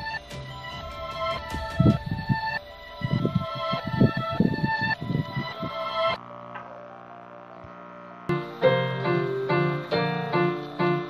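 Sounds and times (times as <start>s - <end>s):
loud music: 0.0s - 6.6s
low drone of stacked tones: 0.0s - 11.0s.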